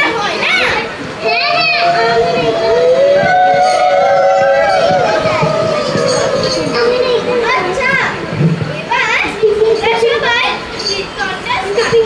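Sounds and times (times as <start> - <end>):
children chattering and calling out: 0.0 - 12.0
steady held note: 1.2 - 7.9.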